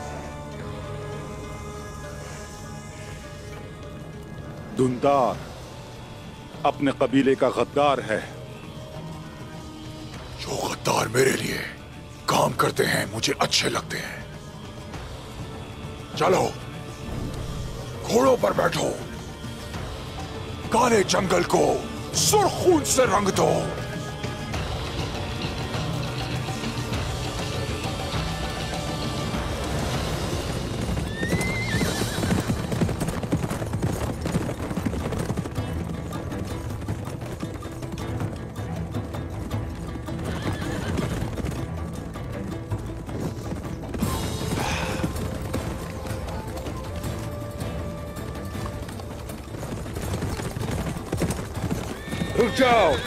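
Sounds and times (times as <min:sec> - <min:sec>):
dramatic orchestral music: 0:00.0 - 0:53.0
horses galloping hoofbeats: 0:00.0 - 0:53.0
horses whinnying: 0:21.5 - 0:53.0.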